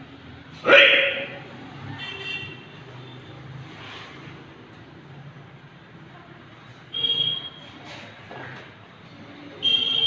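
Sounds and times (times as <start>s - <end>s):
distant road traffic: 0.0s - 10.0s
echoing shout: 0.6s - 1.5s.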